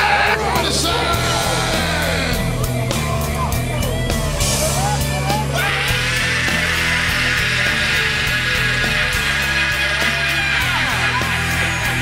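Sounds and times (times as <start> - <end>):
hard rock band playing: 0.0 - 12.0.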